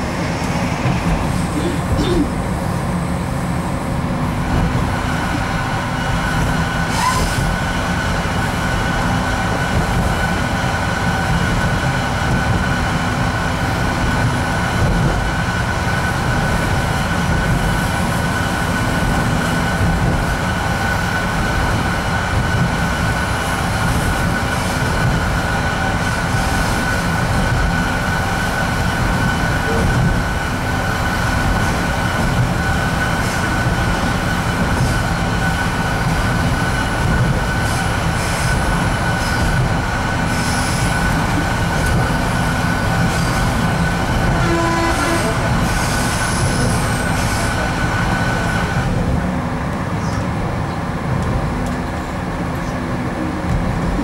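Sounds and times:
low rumble of engine and wheels: 0:00.0 - 0:54.0.

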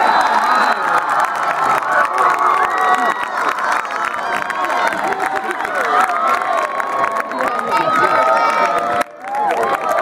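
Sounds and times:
spectators cheering and shouting: 0:00.0 - 0:10.0.

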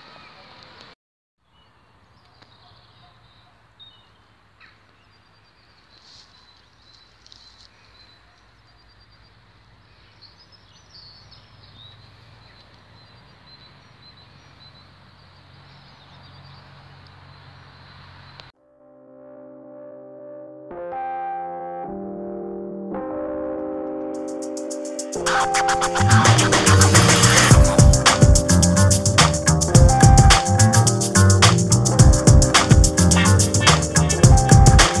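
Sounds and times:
birds chirping: 0:01.4 - 0:18.5
background music with held chords: 0:18.6 - 0:35.0.

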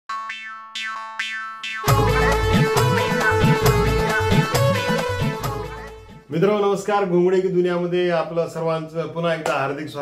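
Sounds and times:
twanging jingle notes: 0:00.1 - 0:05.9
music track with a beat: 0:01.7 - 0:06.2
held chord: 0:01.8 - 0:06.2.

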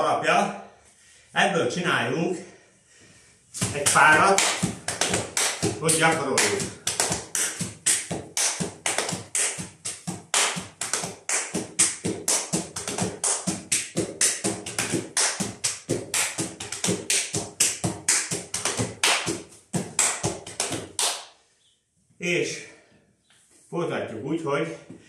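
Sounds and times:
palm slaps on thighs: 0:03.6 - 0:21.3
hand claps: 0:03.6 - 0:21.4.

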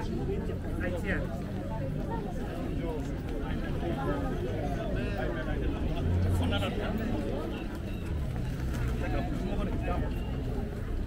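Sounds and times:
crowd talking indistinctly: 0:00.0 - 0:11.0.

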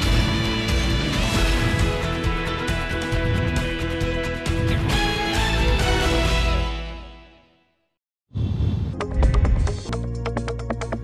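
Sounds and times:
news theme music: 0:00.0 - 0:07.2.

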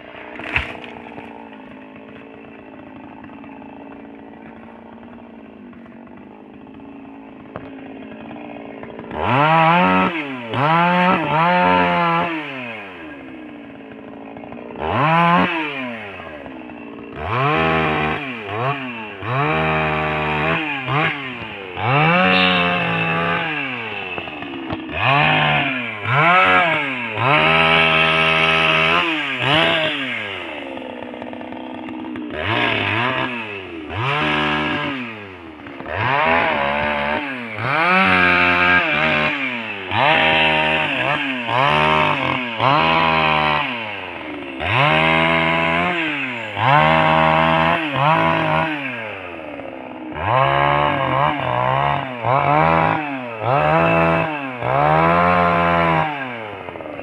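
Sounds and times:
chainsaw revving and cutting wood: 0:00.0 - 0:57.0.

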